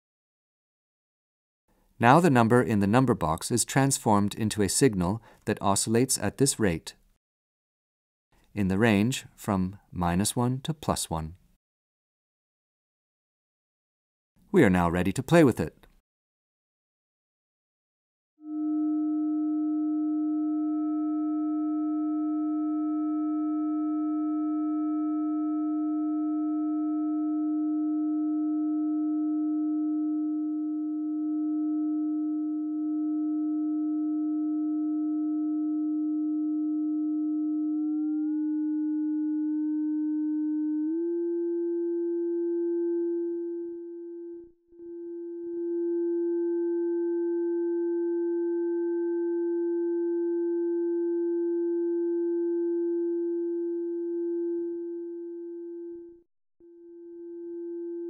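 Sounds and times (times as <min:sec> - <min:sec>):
electronic synthesizer tone: 0:18.4 - 0:58.0.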